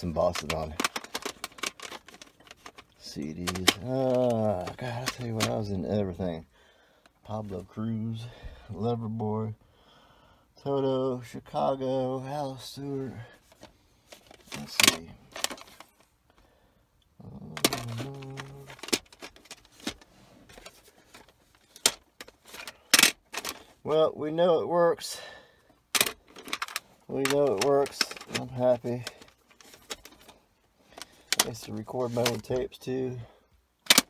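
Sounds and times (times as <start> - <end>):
plastic cassette cases clicking: 0.0 - 5.7, 13.5 - 16.1, 17.5 - 23.7, 25.9 - 32.7, 33.8 - 34.0.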